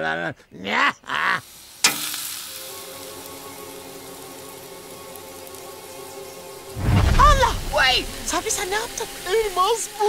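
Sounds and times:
food sizzling on grill: 1.1s - 10.0s.

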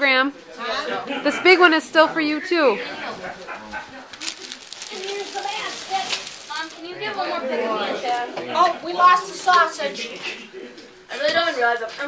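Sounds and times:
quiet voices talking: 0.0s - 12.0s
wrapping paper rustling: 4.1s - 6.8s.

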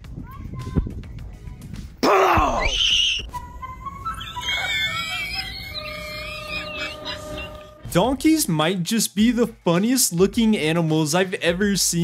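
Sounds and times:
girl screaming: 2.0s - 3.3s.

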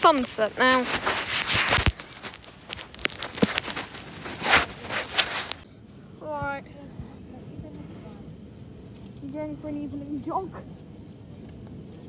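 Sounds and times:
footsteps on sand: 0.0s - 5.6s.

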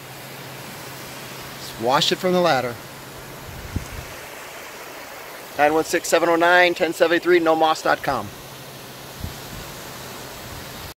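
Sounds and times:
hiss of water spray: 0.0s - 11.0s.

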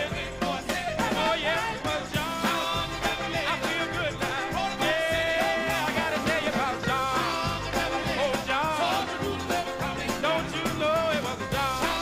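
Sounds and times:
live band playing: 0.0s - 12.0s
person singing: 0.0s - 12.0s.

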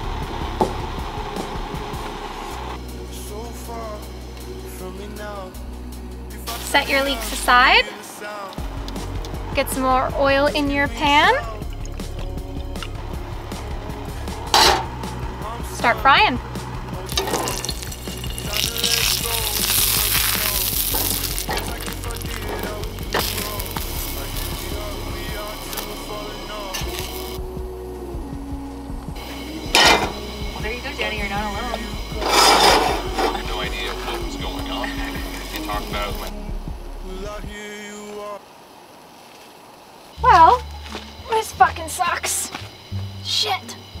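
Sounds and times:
background music: 0.0s - 39.0s, 40.1s - 44.0s
oil sizzling in a skillet: 6.2s - 9.4s, 17.0s - 27.4s, 29.3s - 36.2s
utensils knocking on pans: 14.5s - 14.9s.

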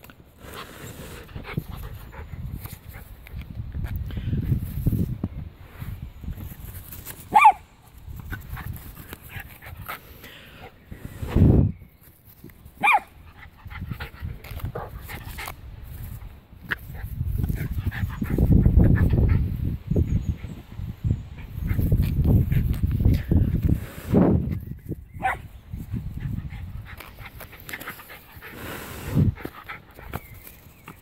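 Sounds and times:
small dog yipping: 7.3s - 7.6s, 12.8s - 13.1s.

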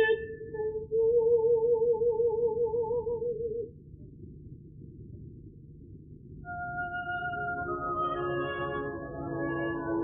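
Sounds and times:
soft orchestral accompaniment: 6.5s - 10.0s.

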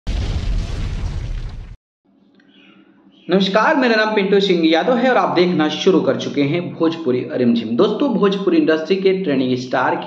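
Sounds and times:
explosion with deep rumble: 0.0s - 1.8s.

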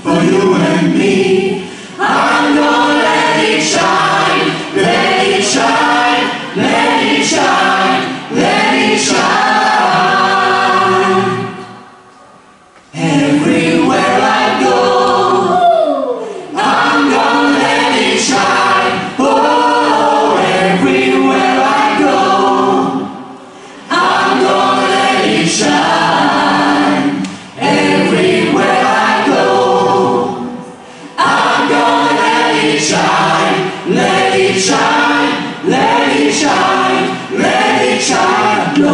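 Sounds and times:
men and women singing in chorus: 0.0s - 12.0s, 12.9s - 38.9s.

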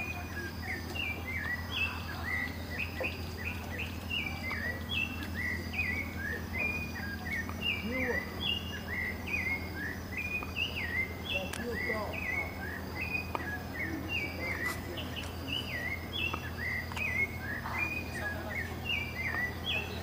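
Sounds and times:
birds chirping: 0.0s - 20.0s
steady low hum: 0.0s - 20.0s.

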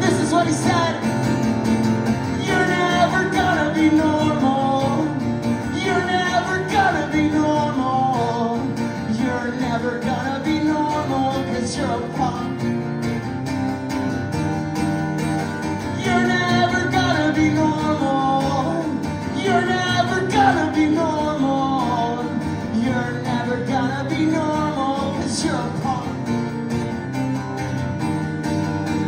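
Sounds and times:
man singing: 0.0s - 1.5s, 2.1s - 12.8s, 15.8s - 26.5s
acoustic guitar strumming: 0.0s - 29.0s.

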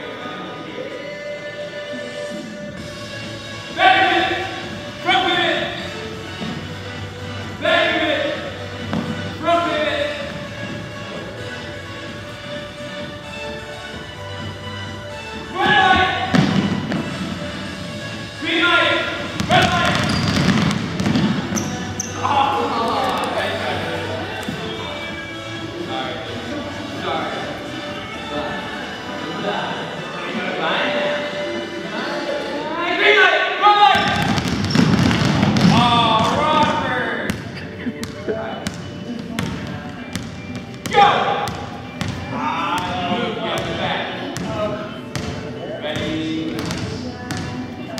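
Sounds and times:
basketballs bouncing on hardwood floor: 8.8s - 9.3s, 15.7s - 17.3s, 19.1s - 21.9s, 33.9s - 43.0s, 43.6s - 45.4s, 46.0s - 47.6s
voices: 35.6s - 47.9s.

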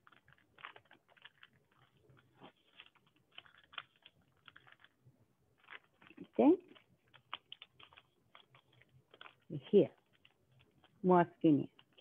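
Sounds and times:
paper being folded and creased: 0.0s - 5.0s, 5.6s - 11.0s.

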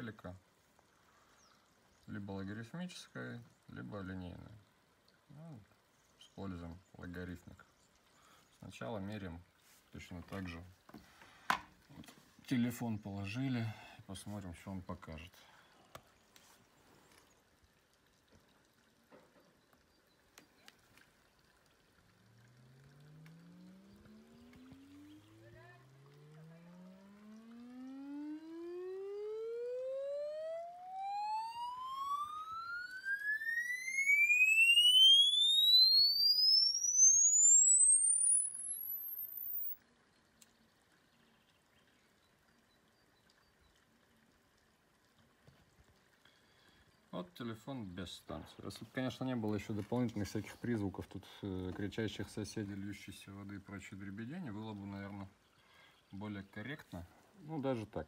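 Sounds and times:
rising sine sweep tone: 22.6s - 39.8s.

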